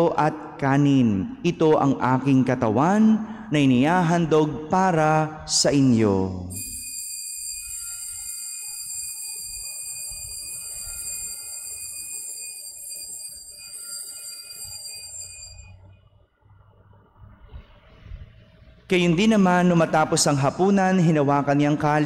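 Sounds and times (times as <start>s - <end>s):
altar bells ringing: 6.5s - 15.9s.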